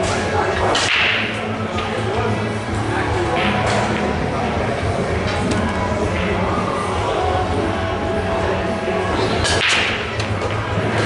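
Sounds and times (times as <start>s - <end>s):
clicks of balls hitting: 0.0s - 1.9s, 9.4s - 11.0s.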